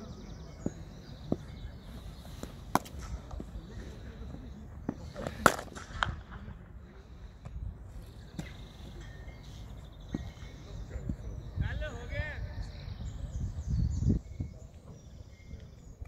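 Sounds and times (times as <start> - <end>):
cricket bats hitting balls: 2.4 - 4.0, 4.8 - 6.5.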